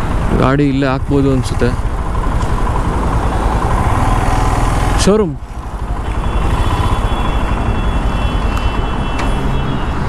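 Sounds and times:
street traffic: 0:00.0 - 0:10.0
motorcycle engine idling: 0:01.8 - 0:08.4.

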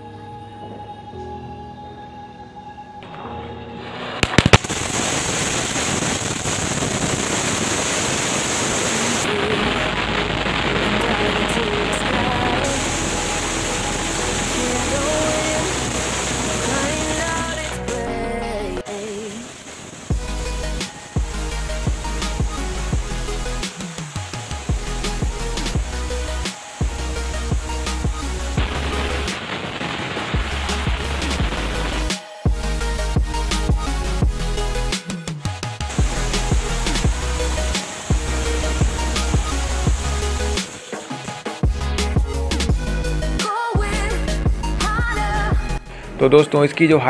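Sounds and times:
firework fountain hissing and crackling: 0:03.8 - 0:18.0, 0:18.8 - 0:35.1, 0:35.7 - 0:45.4
firework sharp cracks: 0:04.0 - 0:17.8, 0:18.9 - 0:32.5, 0:35.9 - 0:41.6
background music with bass beat: 0:09.2 - 0:18.9, 0:20.1 - 0:46.4.

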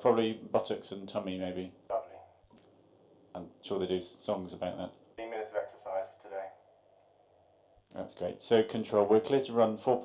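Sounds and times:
man speaking: 0:00.0 - 0:02.4, 0:03.4 - 0:06.6.

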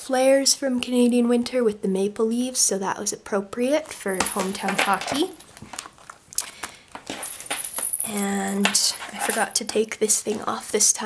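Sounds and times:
plastic and paper pages rustling: 0:03.8 - 0:07.7.

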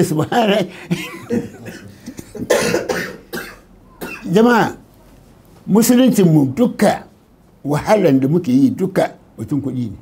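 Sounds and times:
man coughing: 0:00.9 - 0:04.4
man speaking: 0:04.2 - 0:04.9, 0:05.7 - 0:10.0.

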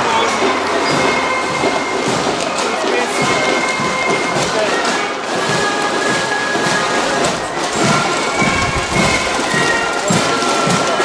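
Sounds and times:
band music: 0:00.0 - 0:11.0
crowd voices: 0:00.0 - 0:11.0.

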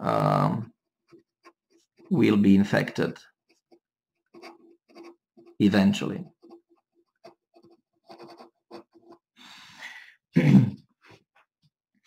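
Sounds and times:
pen scratching on paper: 0:01.0 - 0:09.3.

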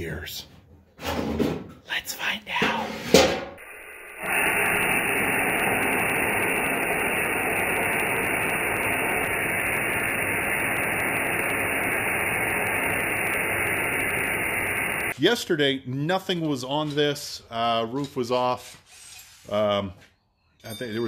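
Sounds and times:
compressed air blowgun hissing: 0:03.6 - 0:15.2.

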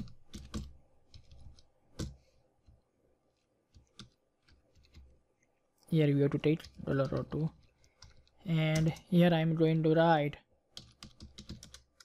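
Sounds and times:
computer keys clicking: 0:10.7 - 0:12.0.

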